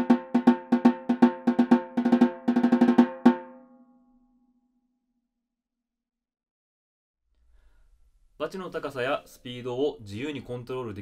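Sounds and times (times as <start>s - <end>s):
snare drum played with sticks: 0.0s - 3.6s.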